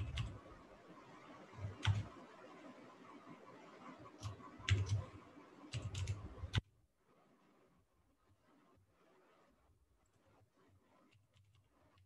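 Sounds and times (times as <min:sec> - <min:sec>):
keyboard typing clicks: 0:00.0 - 0:00.4, 0:01.6 - 0:02.1, 0:04.2 - 0:05.0, 0:05.7 - 0:06.6.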